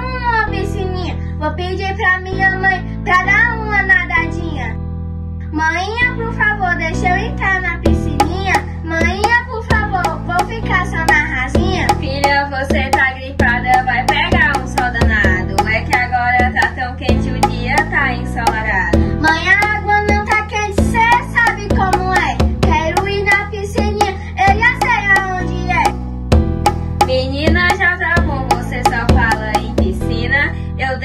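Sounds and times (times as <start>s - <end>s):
percussion beat: 7.9s - 30.2s
plucked strings: 7.9s - 30.2s.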